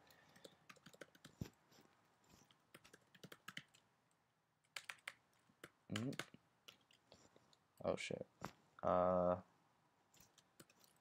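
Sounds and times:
computer keyboard typing: 0:00.3 - 0:01.6, 0:02.4 - 0:03.9, 0:04.6 - 0:07.0, 0:10.2 - 0:11.0.

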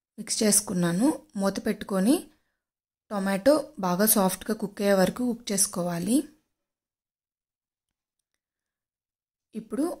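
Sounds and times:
person speaking: 0:03.1 - 0:06.4.

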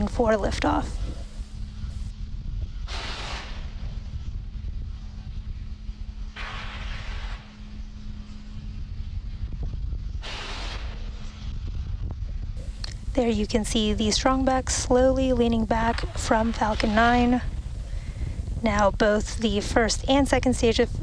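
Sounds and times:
steady low rumble and hum: 0:00.0 - 0:21.0
venting gas hiss: 0:00.6 - 0:02.1, 0:12.6 - 0:21.0.

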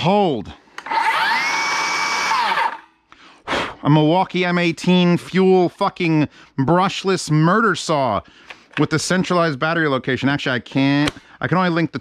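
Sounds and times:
circular saw motor whine: 0:00.9 - 0:02.9.

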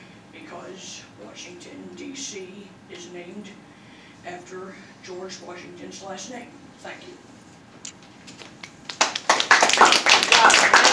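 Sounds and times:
audience applause: 0:08.8 - 0:10.9.

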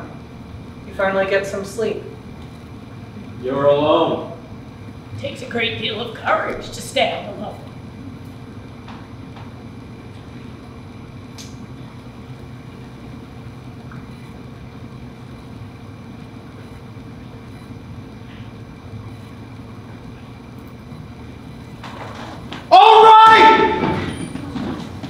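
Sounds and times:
low room hum: 0:00.0 - 0:25.0.

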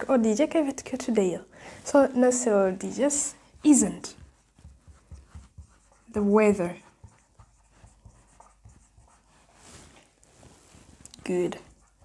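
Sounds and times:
marker writing on whiteboard: 0:02.6 - 0:12.0.

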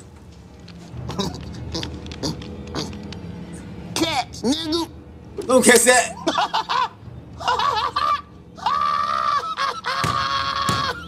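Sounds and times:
man's squealing laughter: 0:06.1 - 0:11.0.

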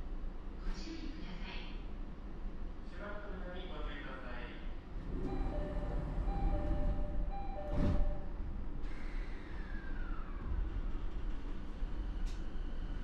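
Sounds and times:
train low hum: 0:00.0 - 0:13.0
two-note train door chime: 0:05.2 - 0:08.4.

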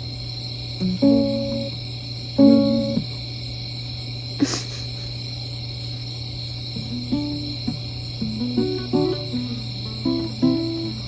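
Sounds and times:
steady hum and hiss: 0:00.0 - 0:11.0
plucked guitar: 0:00.8 - 0:01.8, 0:02.4 - 0:03.1, 0:06.8 - 0:11.0.

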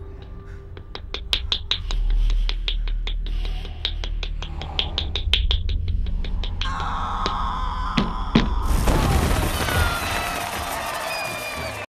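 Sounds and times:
steady low rumble: 0:00.0 - 0:08.6.

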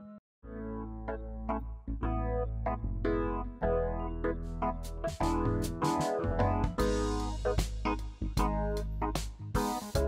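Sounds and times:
instrumental music with a beat: 0:04.4 - 0:10.0.

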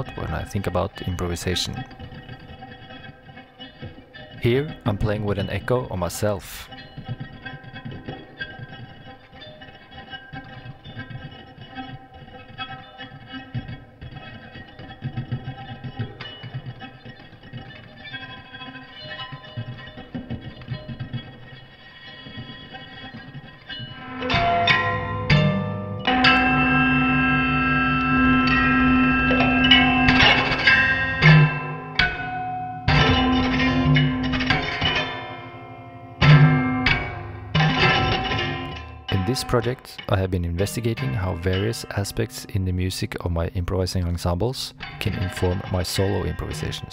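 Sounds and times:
electric guitar with delay echo: 0:00.0 - 0:43.5
low drone: 0:23.9 - 0:39.3.

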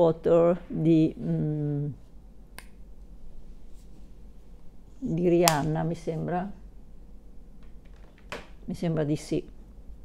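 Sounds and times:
quiet room noise: 0:00.0 - 0:10.0.

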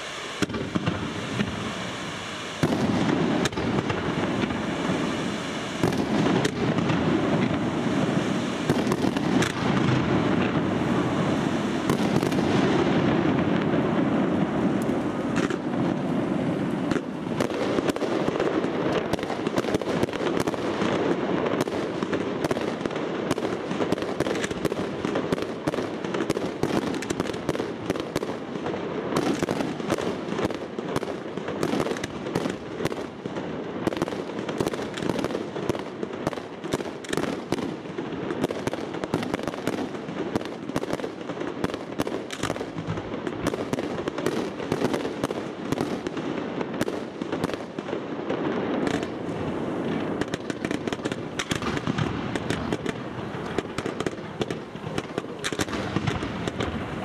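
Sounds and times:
fireworks crackling: 0:00.0 - 0:57.0
loud firework report: 0:00.0 - 0:57.0.

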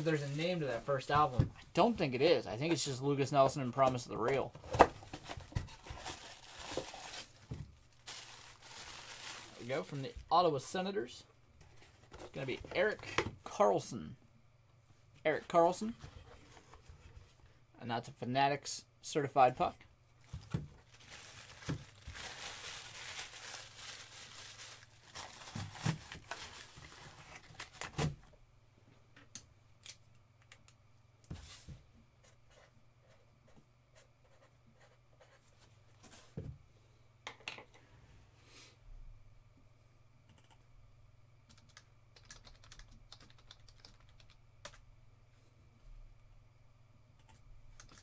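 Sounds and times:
rustling handling noise: 0:03.8 - 0:11.0, 0:20.2 - 0:28.0.

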